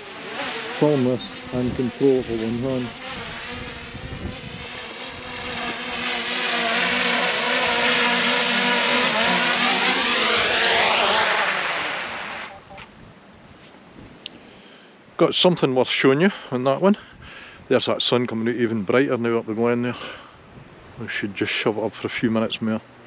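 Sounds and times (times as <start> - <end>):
drone propellers whining: 0.0 - 12.9.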